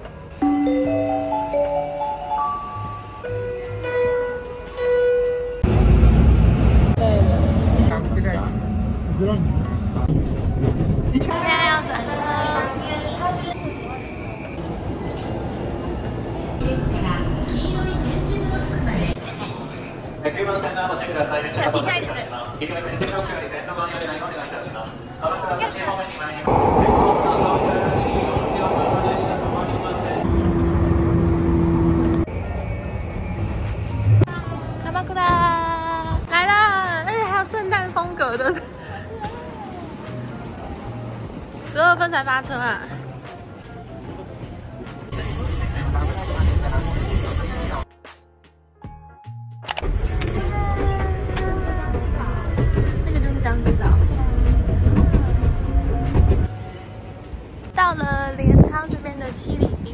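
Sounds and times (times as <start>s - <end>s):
train cars rushing past: 26.3s - 34.8s
voices: 26.4s - 31.6s
train rumbling from inside car: 26.4s - 36.3s, 49.9s - 59.9s
train two-note hum: 26.5s - 32.7s.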